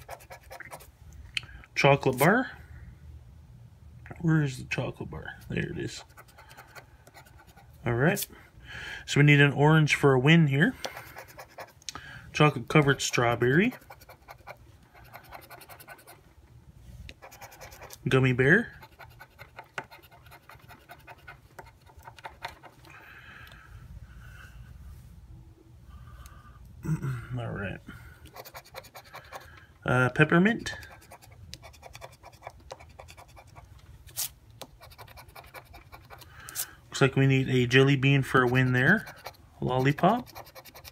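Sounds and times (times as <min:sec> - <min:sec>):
lottery ticket being scratched: 0:00.0 - 0:00.9, 0:05.4 - 0:08.3, 0:10.8 - 0:11.8, 0:12.8 - 0:16.2, 0:17.2 - 0:22.8, 0:28.3 - 0:29.5, 0:30.6 - 0:36.7, 0:37.6 - 0:40.9
scraper rasping lottery ticket: 0:38.2 - 0:40.9.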